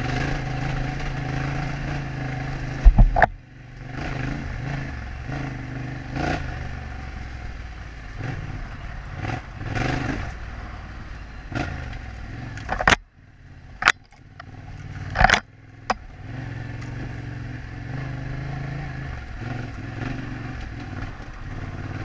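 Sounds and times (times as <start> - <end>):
motorcycle engine running: 0.0 - 22.0.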